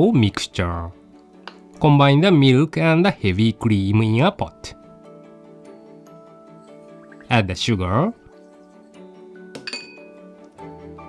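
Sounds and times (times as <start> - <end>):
light background music: 0.0 - 11.0
kitchenware clinking on saucepan: 9.5 - 10.2.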